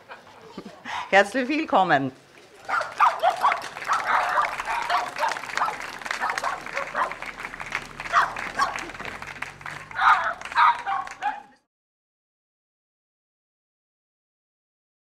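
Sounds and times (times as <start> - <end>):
dog barking and yipping: 2.6 - 7.2, 8.0 - 9.0, 9.9 - 11.6.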